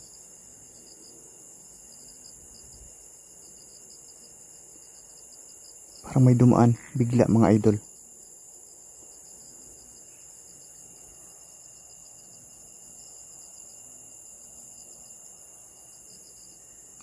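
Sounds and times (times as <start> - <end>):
crickets chirping: 0.0 - 17.0.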